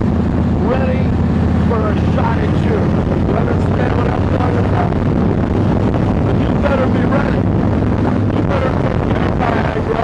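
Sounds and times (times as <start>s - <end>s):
motorcycle engine running: 0.0s - 10.0s
wind on microphone: 0.0s - 10.0s.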